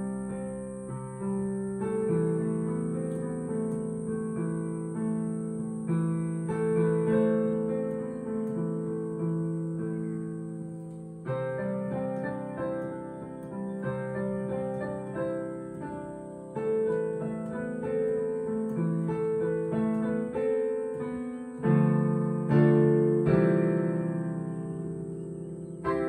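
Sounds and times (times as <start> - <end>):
digital piano playing slowly: 0.0 - 26.0.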